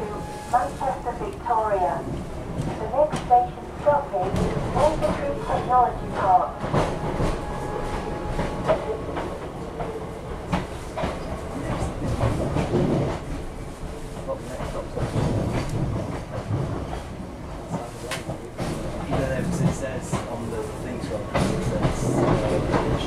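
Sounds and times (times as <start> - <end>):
passenger train rumble: 0.0 - 23.0.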